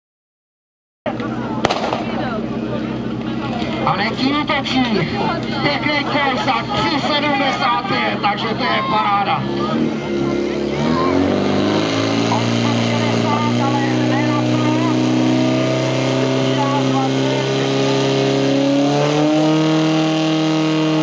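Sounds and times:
fire pump engine running: 0:01.1 - 0:21.0.

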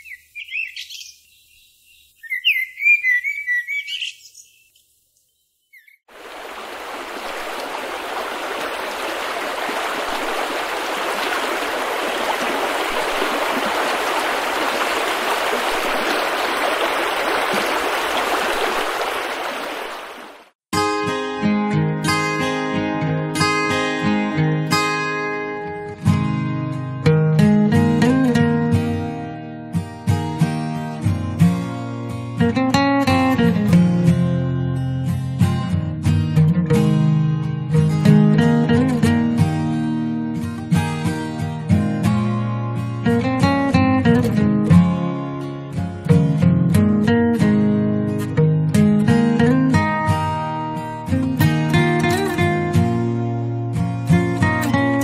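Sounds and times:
birds chirping: 0:00.0 - 0:20.5
acoustic guitar music: 0:20.8 - 0:55.0.

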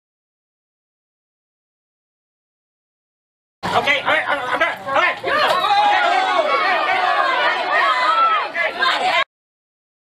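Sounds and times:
people talking over one another: 0:03.6 - 0:09.3.

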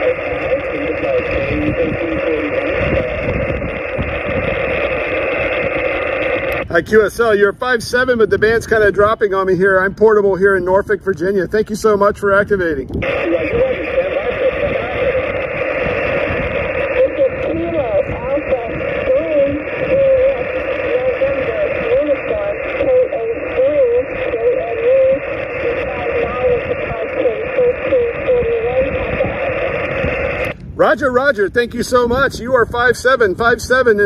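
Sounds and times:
thin radio voice: 0:00.0 - 0:05.6, 0:11.7 - 0:34.0
steady radio hiss: 0:00.0 - 0:34.0
man speaking close by: 0:06.7 - 0:12.9, 0:30.8 - 0:34.0.

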